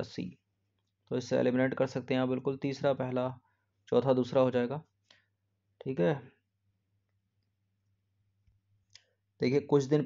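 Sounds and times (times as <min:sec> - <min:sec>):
man speaking: 0:00.0 - 0:00.4, 0:01.1 - 0:04.9, 0:05.8 - 0:06.4, 0:09.4 - 0:10.0.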